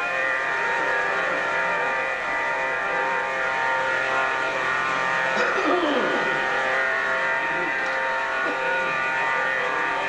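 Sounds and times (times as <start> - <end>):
harmonium chord: 0.0 - 10.0.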